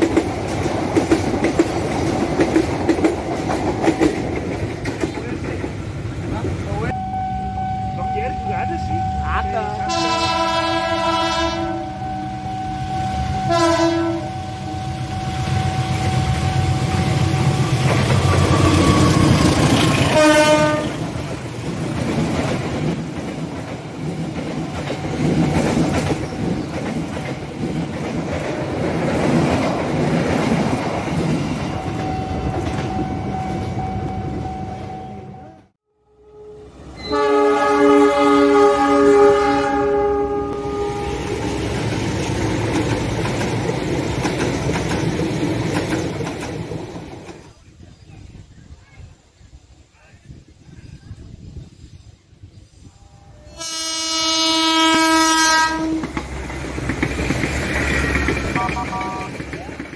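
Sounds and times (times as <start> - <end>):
passing train noise: 0.0 - 59.9
locomotive air horn: 6.9 - 17.6, 20.0 - 21.0, 34.1 - 41.3, 53.0 - 56.1, 58.5 - 59.4
multi-note train horn: 6.9 - 17.8, 18.4 - 21.1, 32.0 - 41.4, 52.9 - 56.2, 58.5 - 59.4.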